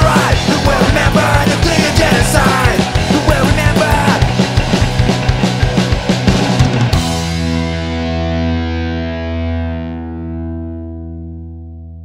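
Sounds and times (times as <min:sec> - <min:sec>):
distorted electric guitar chord: 0:00.0 - 0:11.9.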